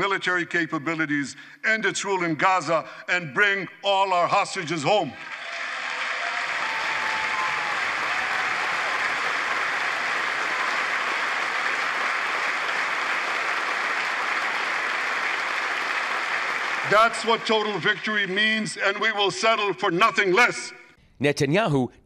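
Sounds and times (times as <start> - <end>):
audience applauding: 5.0 - 20.0.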